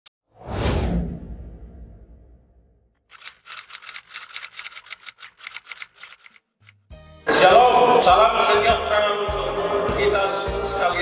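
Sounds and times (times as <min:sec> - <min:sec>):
whoosh with deep boom: 0:00.4 - 0:02.8
rapid sharp clicks: 0:03.0 - 0:06.8.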